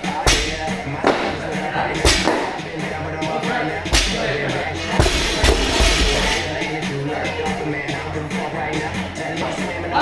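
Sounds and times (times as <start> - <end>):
rapping over hip-hop music: 0.0 - 10.0.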